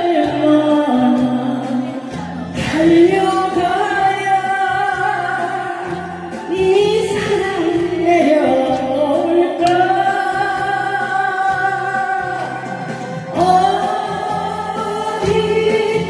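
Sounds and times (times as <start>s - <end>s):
karaoke backing track: 0.0s - 16.0s
woman singing into microphone: 0.0s - 16.0s.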